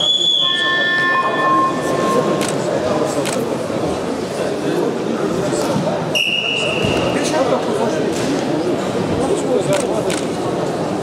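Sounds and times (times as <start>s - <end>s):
sustained whistle tone: 0.0s - 2.4s, 6.2s - 6.9s
crowd voices: 0.0s - 11.0s.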